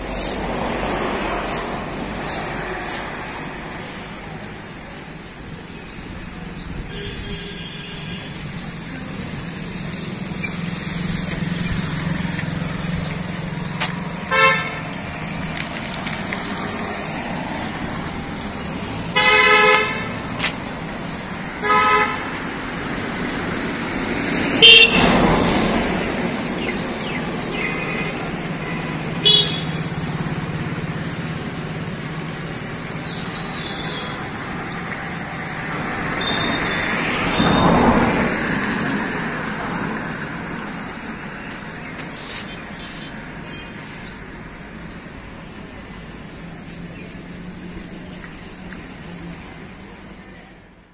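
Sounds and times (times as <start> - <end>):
traffic hiss: 7.8 - 50.9
vehicle horn honking: 14.3 - 14.8, 19.2 - 20.1, 21.6 - 22.3, 24.6 - 25.2, 27.6 - 29.8, 36.2 - 37.6.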